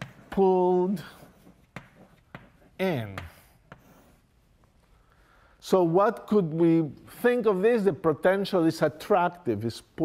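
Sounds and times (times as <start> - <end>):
chalk tapping on board: 1.3 - 4.1
chalk scratching on blackboard: 3.4 - 4.3.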